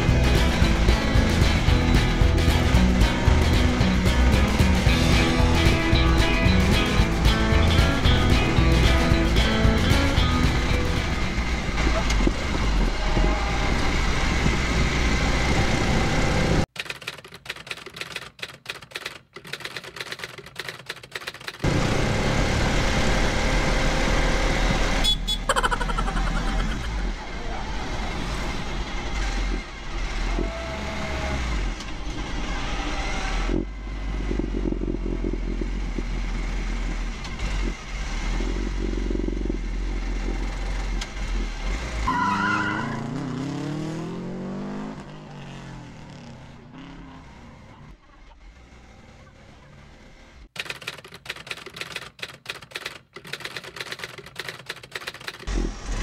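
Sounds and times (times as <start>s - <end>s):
vehicle engine running: 0.0s - 16.7s, 21.6s - 42.1s
road noise: 0.0s - 16.8s, 19.1s - 56.0s.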